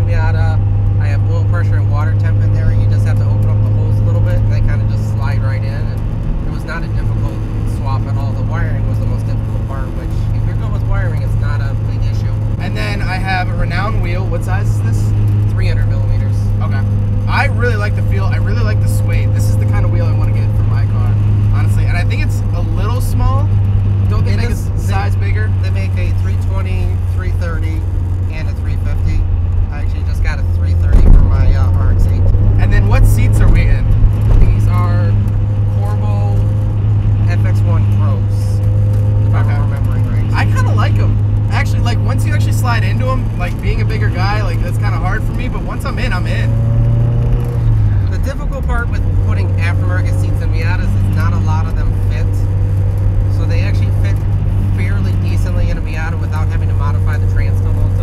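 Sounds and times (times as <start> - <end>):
people talking: 0.0 - 36.5, 37.2 - 38.6, 39.2 - 46.6, 47.9 - 52.5, 53.3 - 58.0
car engine drone in cabin: 0.0 - 58.0.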